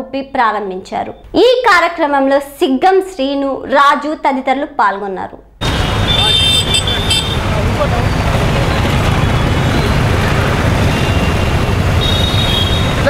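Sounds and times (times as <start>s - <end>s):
street traffic rumble: 5.6s - 13.0s.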